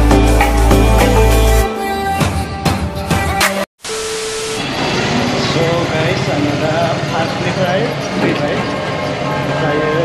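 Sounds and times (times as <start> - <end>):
street traffic noise: 4.3 - 10.0.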